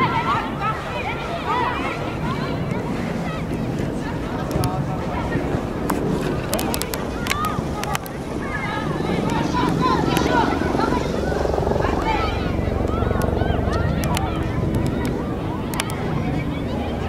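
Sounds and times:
wind rumbling on microphone: 0.0 - 17.0
players shouting: 7.0 - 17.0.

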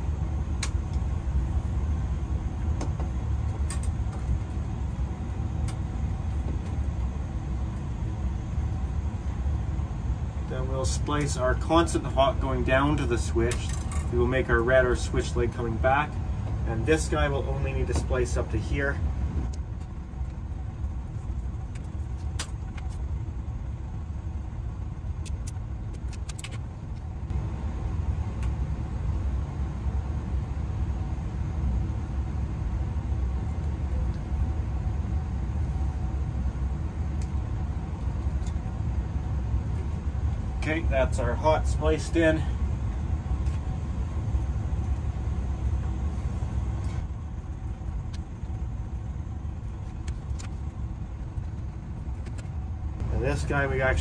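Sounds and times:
steady low rumble: 0.0 - 54.0
wire connectors clicking: 25.2 - 27.1.

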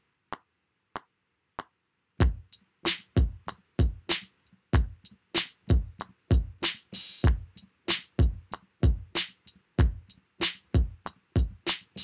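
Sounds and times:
hi-hat and snare ticks: 0.3 - 12.0
electronic drum beat: 2.2 - 12.0.

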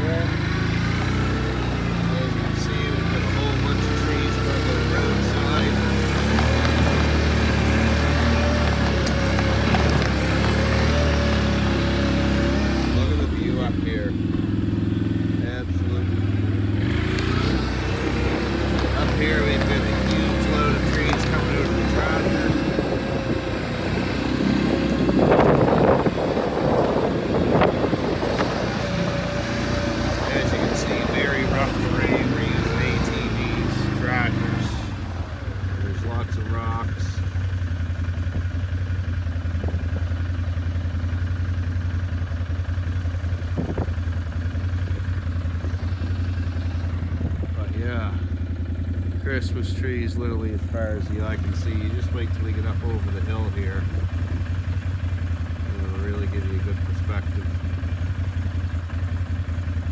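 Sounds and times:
vehicle engine under load: 0.0 - 59.9.

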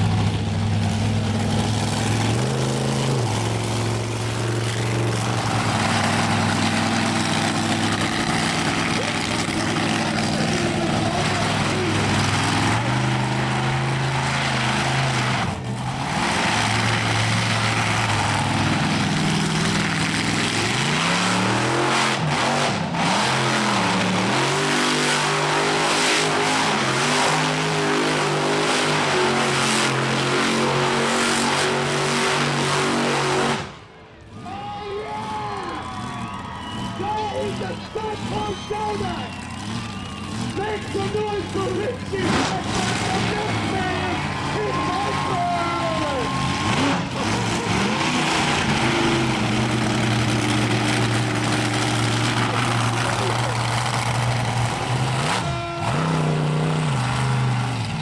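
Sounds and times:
monster truck engines revving: 0.0 - 58.0
tires spinning in dirt: 0.0 - 58.0.

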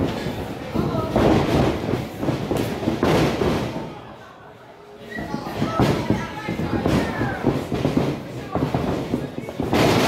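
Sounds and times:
feet pounding on ring boards: 5.6 - 10.0.

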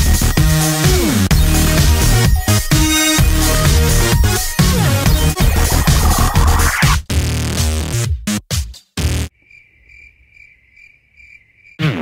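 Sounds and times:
electronic music: 0.0 - 7.6.

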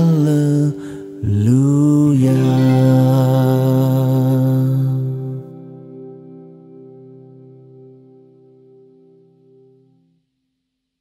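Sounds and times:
man singing long low note: 0.0 - 6.3.

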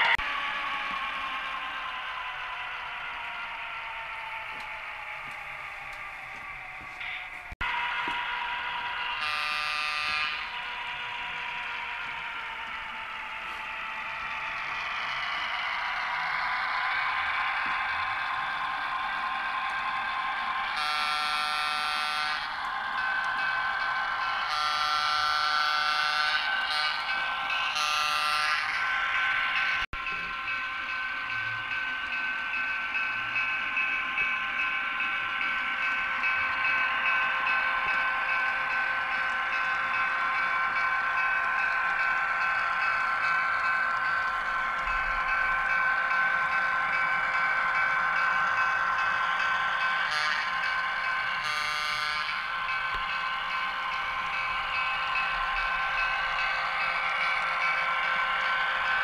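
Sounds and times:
locomotive horn blasts: 9.2 - 10.5, 20.8 - 22.5, 51.4 - 52.4.

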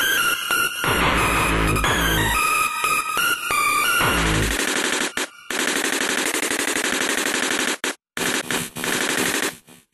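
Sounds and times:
hardcore electronic music: 0.5 - 4.6
machine-gun fire: 4.5 - 9.6.

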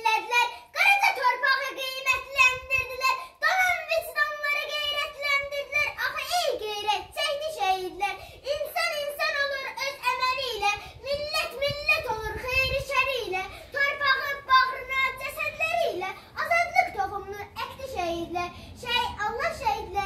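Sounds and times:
girl reciting a poem: 0.0 - 20.0.

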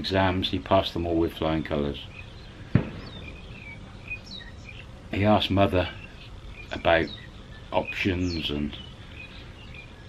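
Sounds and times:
birds chirping: 0.0 - 10.0
low background noise: 0.0 - 10.0.

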